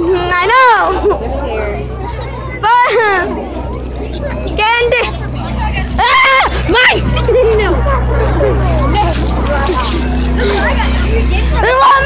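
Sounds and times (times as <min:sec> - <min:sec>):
children shrieking and squealing: 0:00.0 - 0:12.0
steady low hum: 0:00.0 - 0:12.0.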